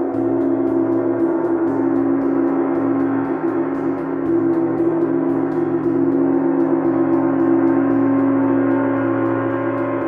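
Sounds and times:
gong roll with felt mallets: 0.0s - 10.0s.

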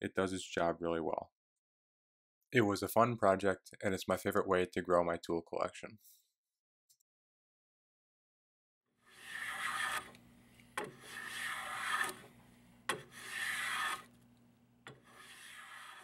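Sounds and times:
hand plane rasping on wood: 9.1s - 10.2s, 10.8s - 12.3s, 12.9s - 14.1s, 15.0s - 16.0s.

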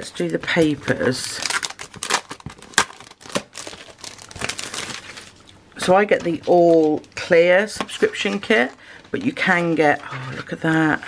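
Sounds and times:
sharp plastic crackles: 0.0s - 9.4s
plastic packaging crinkling: 0.0s - 11.0s.

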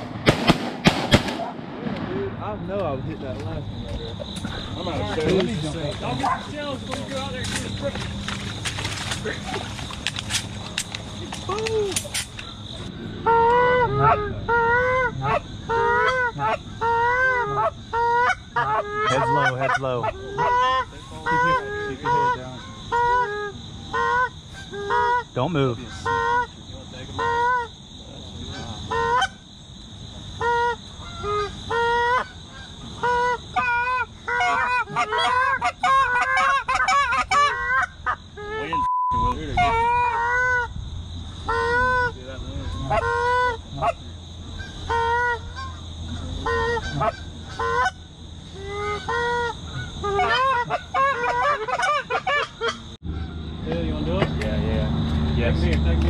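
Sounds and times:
geese honking: 12.3s - 27.8s, 28.4s - 29.4s, 30.4s - 53.6s.

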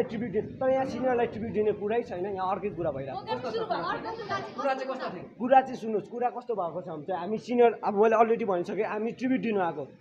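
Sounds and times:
voices chattering: 0.0s - 10.0s
young man talking: 0.0s - 10.0s.

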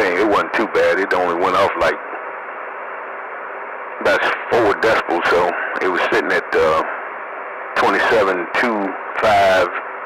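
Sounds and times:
radio static hiss: 0.0s - 10.0s.

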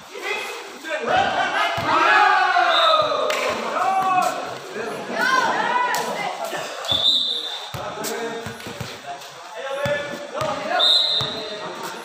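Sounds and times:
voices: 0.0s - 12.0s
referee's whistle blast: 6.9s - 7.7s, 10.8s - 11.5s.

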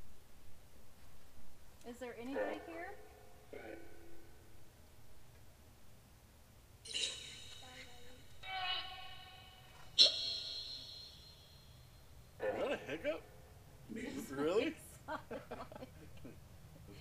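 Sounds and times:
sharp ringing tone: 6.8s - 12.4s
electronic voice-like fragments: 6.9s - 11.4s.

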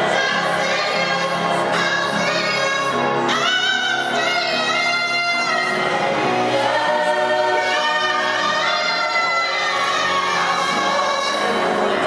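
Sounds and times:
gospel choir singing in harmony: 0.0s - 12.0s.

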